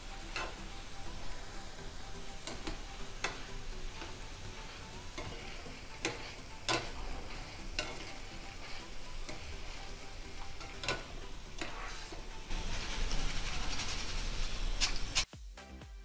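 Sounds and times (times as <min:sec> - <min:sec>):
batter drops sizzling in oil: 0:00.0 - 0:15.3.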